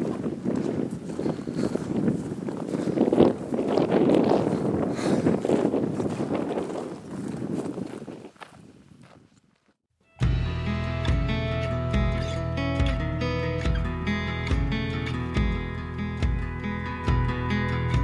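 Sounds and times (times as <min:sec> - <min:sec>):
footsteps on dry grass: 0:00.0 - 0:09.8.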